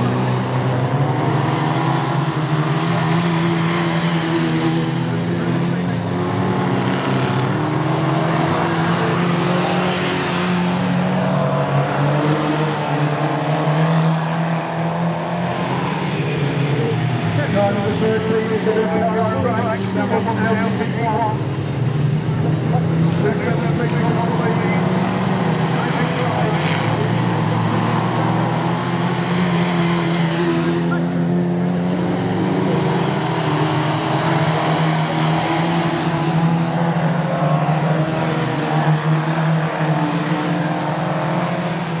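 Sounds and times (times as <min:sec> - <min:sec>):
racing car engines: 0:00.0 - 0:42.0.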